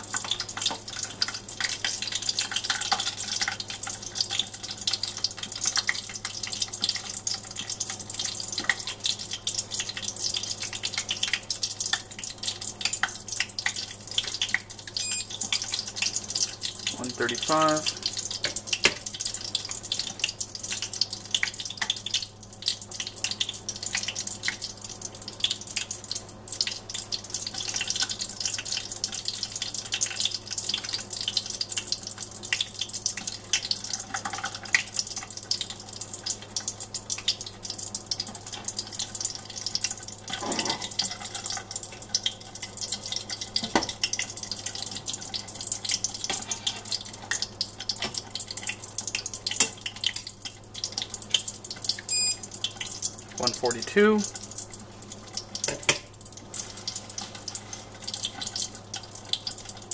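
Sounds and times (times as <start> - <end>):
hot oil sizzling and popping: 0.0 - 59.9.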